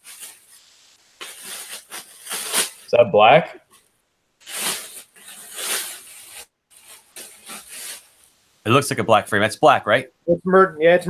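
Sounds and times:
plastic bag rustling: 0.0 - 2.9, 4.4 - 8.5.

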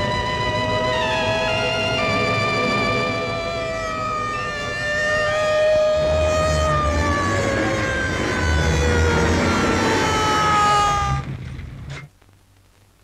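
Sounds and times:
wailing tones sliding downward: 0.0 - 11.3
low rumble: 0.0 - 11.9.

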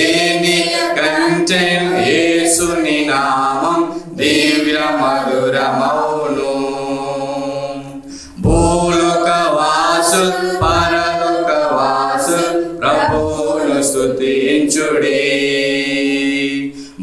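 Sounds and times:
group singing a hymn a cappella: 0.0 - 17.0.

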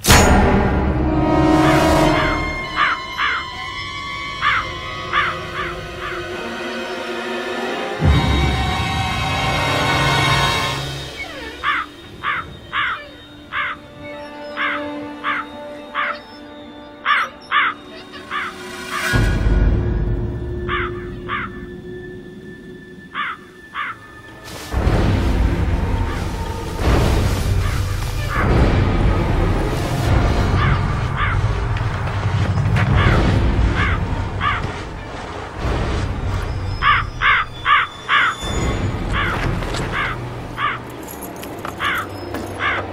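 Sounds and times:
low film score drone: 0.0 - 41.0
crows cawing: 2.6 - 6.5, 11.3 - 16.4, 17.0 - 19.2, 20.6 - 21.8, 23.1 - 24.1, 27.3 - 28.4, 30.5 - 31.5, 32.9 - 34.8, 36.8 - 38.5, 39.1 - 40.9, 41.8 - 42.9
bird calling: 2.6 - 7.2, 10.8 - 19.3, 20.5 - 24.4, 36.4 - 40.9, 41.7 - 42.9.

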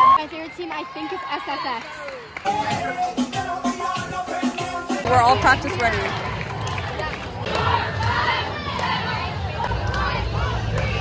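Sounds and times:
women shouting and cheering: 0.0 - 3.2.

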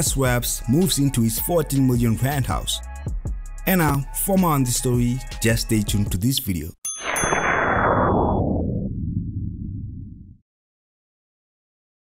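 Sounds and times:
sharp metallic clang: 6.9 - 7.6
falling whoosh: 7.1 - 10.4.

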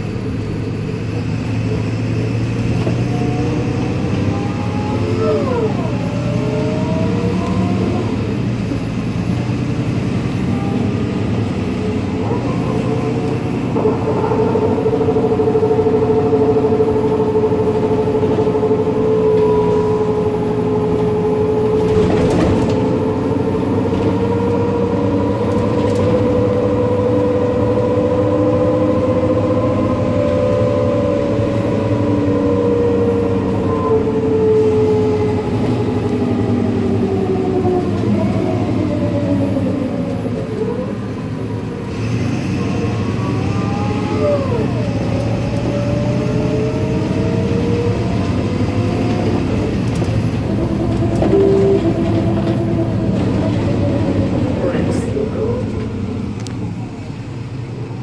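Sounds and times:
bus diesel engine running: 0.0 - 58.0.

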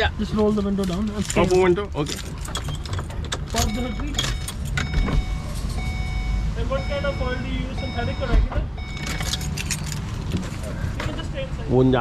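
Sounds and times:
keys jingling: 0.8 - 5.8, 8.9 - 10.7.

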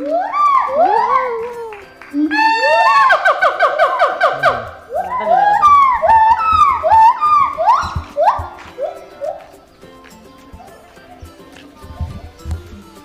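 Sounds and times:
gibbons whooping calls: 0.0 - 9.6.

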